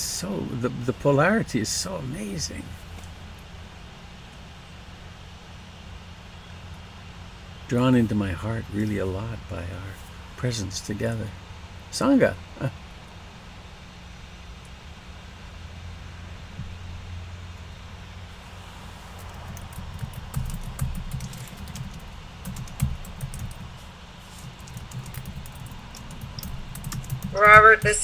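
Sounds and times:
low steady hum: 0.0 - 28.0
computer keyboard typing: 19.2 - 23.8, 24.4 - 28.0.

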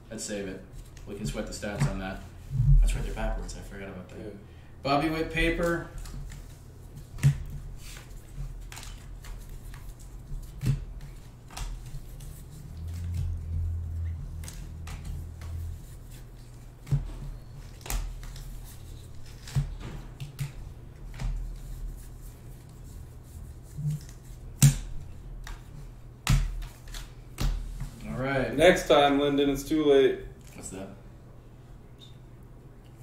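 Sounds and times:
low hum: 2.2 - 3.7, 9.9 - 17.8
cards flipped by hand: 5.6 - 21.8.

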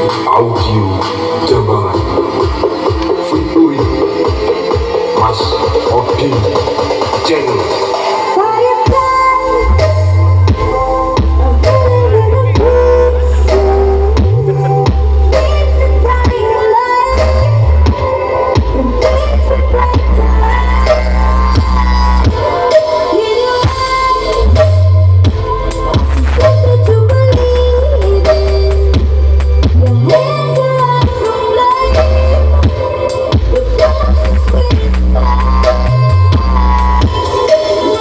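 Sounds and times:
dance music midrange melody: 0.0 - 38.0
deep bass notes: 8.9 - 16.4, 18.6 - 22.5, 23.7 - 31.1, 31.8 - 37.2.

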